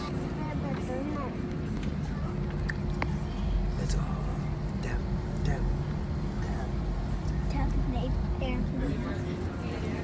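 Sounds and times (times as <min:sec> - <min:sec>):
constant hum: 0:00.0 - 0:10.0
faint voices: 0:00.0 - 0:10.0
low engine rumble: 0:00.0 - 0:10.0.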